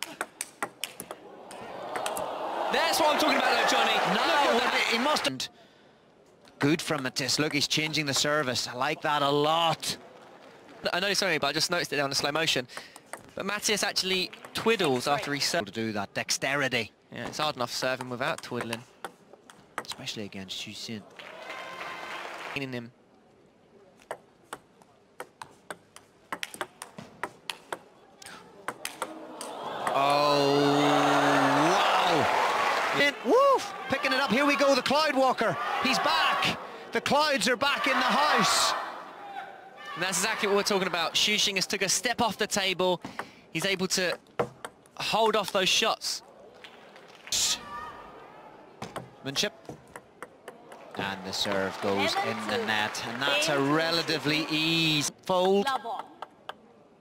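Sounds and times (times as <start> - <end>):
ball clicking on net and table: 0.2 - 1.2, 13.0 - 13.4, 24.0 - 27.9, 28.7 - 30.0, 44.1 - 45.6, 48.8 - 51.0
crowd cheering: 0.9 - 5.4, 21.1 - 22.6, 28.8 - 41.6, 50.5 - 55.1
long shout: 1.3 - 5.2, 21.2 - 22.4, 29.2 - 36.6, 37.5 - 40.9
table tennis ball clicking: 24.0 - 27.8.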